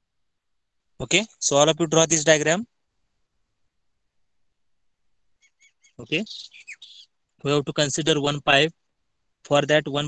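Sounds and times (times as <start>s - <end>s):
bird chirping: 4.6s - 8.4s.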